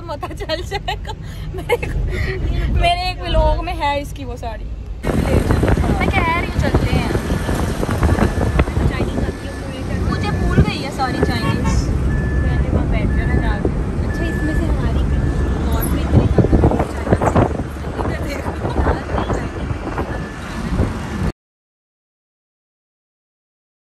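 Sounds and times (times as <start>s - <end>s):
car engine: 0.0s - 21.3s
road rumble: 0.0s - 21.3s
wind on microphone: 5.0s - 14.9s, 15.6s - 21.3s.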